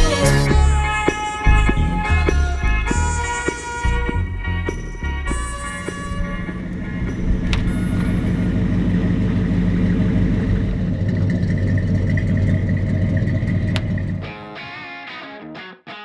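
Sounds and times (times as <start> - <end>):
vehicle engine rumbling: 0.0 - 14.3.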